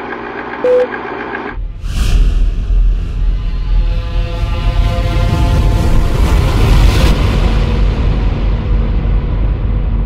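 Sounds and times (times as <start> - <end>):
whoosh: 1.6 - 4.7
music with deep bass rumble: 1.6 - 10.0.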